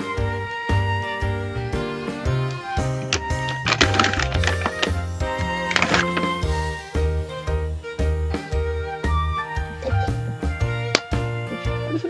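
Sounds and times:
light instrumental music: 0.0s - 12.0s.

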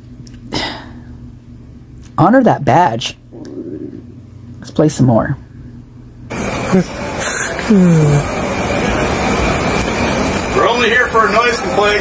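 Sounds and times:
faint voices: 6.3s - 12.0s.

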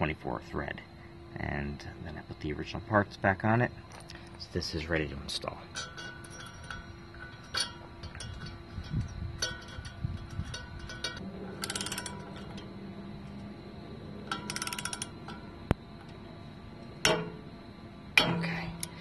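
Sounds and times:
socket wrench ratcheting: 5.8s - 12.6s, 14.3s - 15.4s.

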